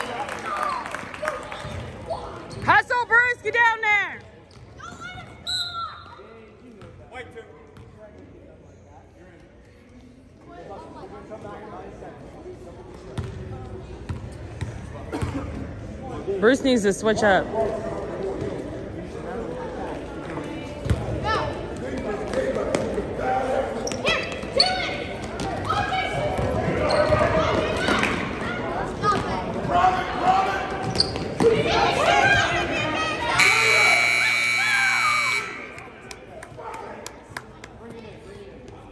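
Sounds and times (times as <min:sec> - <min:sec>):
basketball bouncing: 0:13.2 - 0:13.4
people calling out: 0:33.2 - 0:35.9
steady buzzer: 0:33.4 - 0:35.7.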